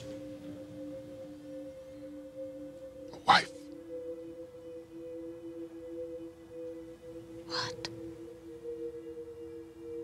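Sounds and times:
low droning music: 0:00.0 - 0:10.0.

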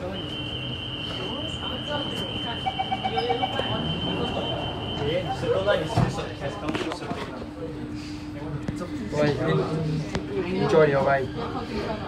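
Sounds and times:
steady high-pitched tone: 0:00.0 - 0:06.6
rapid short beeps: 0:00.5 - 0:06.0.

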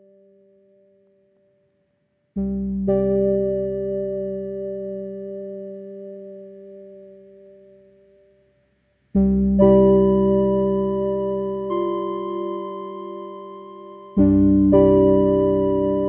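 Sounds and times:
piano chord ringing: 0:09.6 - 0:16.0.

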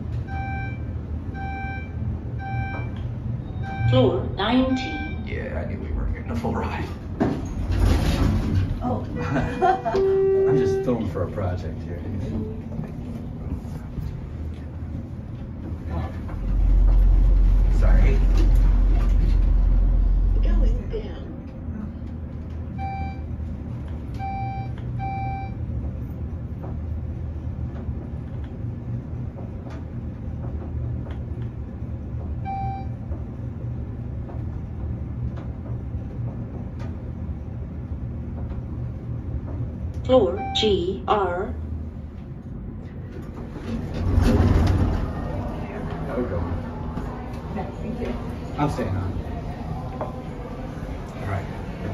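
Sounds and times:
elevator car humming: 0:00.0 - 0:51.9
short electronic beeps: 0:00.2 - 0:05.3, 0:32.4 - 0:33.0, 0:40.2 - 0:40.8
loud low rumble: 0:03.1 - 0:22.4, 0:25.6 - 0:51.9.

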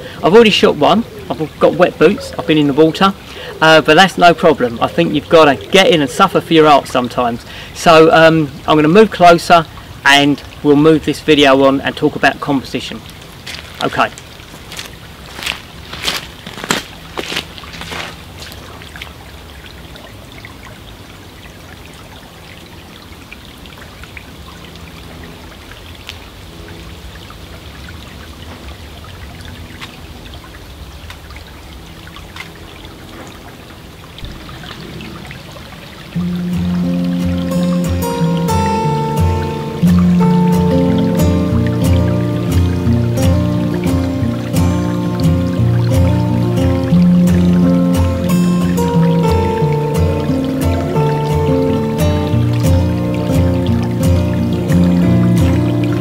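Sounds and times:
stream trickling: 0:00.0 - 0:56.0
footsteps: 0:13.4 - 0:18.6
background music with a beat: 0:36.2 - 0:55.6.

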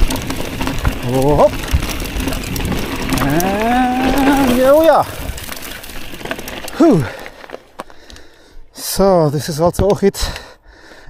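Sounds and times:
bike tyres rolling on dirt: 0:00.0 - 0:10.5
rider vocal sound: 0:03.0 - 0:05.2.

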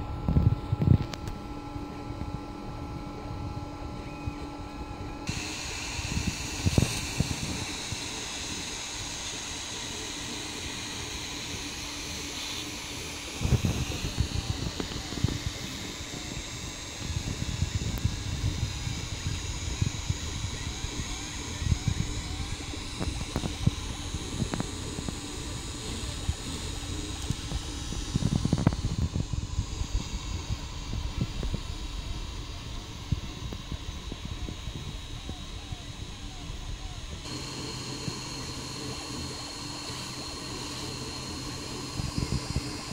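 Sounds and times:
cooling fans whirring: 0:00.0 - 0:42.9
stepper motors whining: 0:00.0 - 0:42.9.

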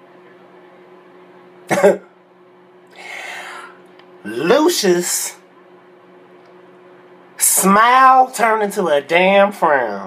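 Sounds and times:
faint steady hum: 0:00.0 - 0:10.0
short cough: 0:01.7 - 0:02.2.

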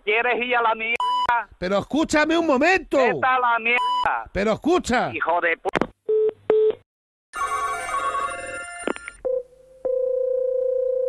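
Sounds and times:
layered electronic phone tones: 0:07.4 - 0:11.0
phone ringing tone: 0:07.4 - 0:11.0.

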